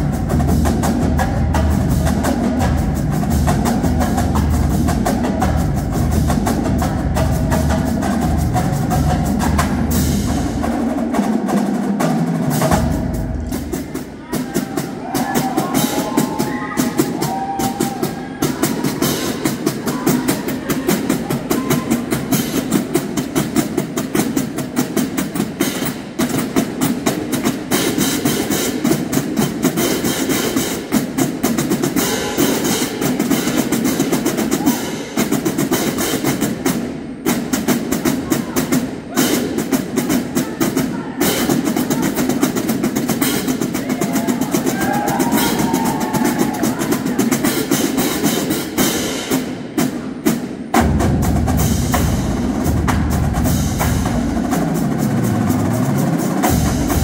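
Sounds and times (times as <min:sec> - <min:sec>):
marching drumline playing: 0:00.0 - 0:57.0.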